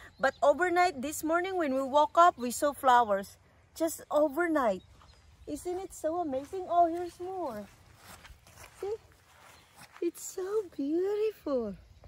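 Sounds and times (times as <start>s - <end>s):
faint rustles: 4.9s - 10.9s.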